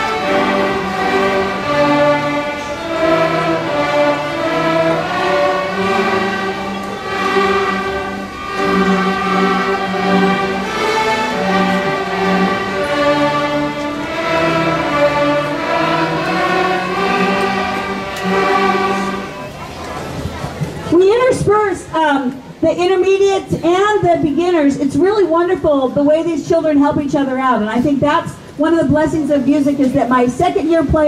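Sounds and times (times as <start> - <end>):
string orchestra playing slow tune: 0.0 - 21.2.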